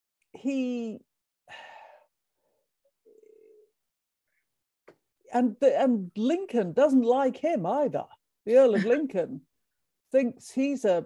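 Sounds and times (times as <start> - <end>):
person sighing: 1.5 - 2.1.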